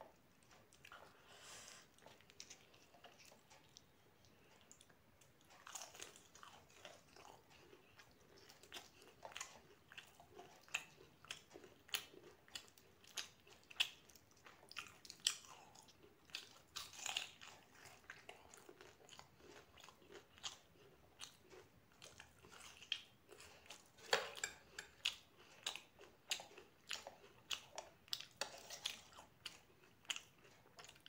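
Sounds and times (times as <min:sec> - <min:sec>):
person chewing food: 0:00.0 - 0:31.0.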